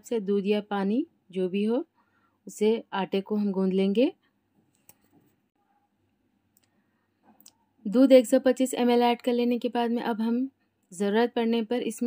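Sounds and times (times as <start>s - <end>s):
woman narrating: 0.0s - 1.9s, 2.5s - 4.2s, 7.9s - 12.0s.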